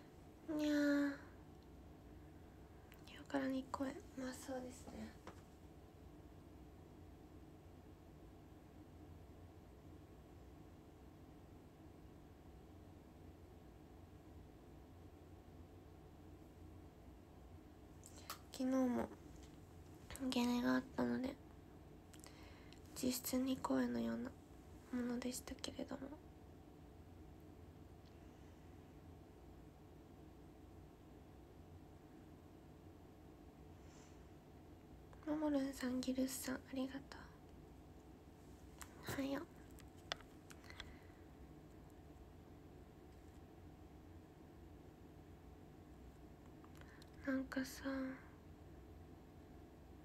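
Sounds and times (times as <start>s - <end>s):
faint low hum: 0.0s - 50.0s
young woman speaking: 0.5s - 1.4s, 3.0s - 5.3s, 18.2s - 19.2s, 20.0s - 21.4s, 22.9s - 26.2s, 35.2s - 37.4s, 38.8s - 39.6s, 47.2s - 48.3s.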